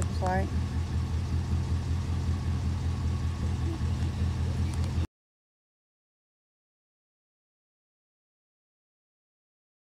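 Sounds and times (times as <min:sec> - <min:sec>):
truck engine idling: 0:00.0 - 0:05.1.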